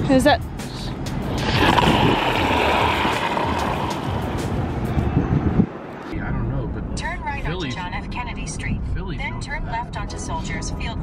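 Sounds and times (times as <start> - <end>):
car road rumble: 0.8 - 11.0
curling stone sliding: 1.4 - 4.4.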